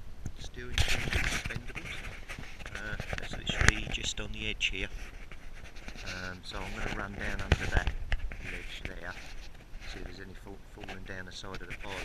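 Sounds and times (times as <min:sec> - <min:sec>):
microphone handling noise: 0:00.2 - 0:12.0.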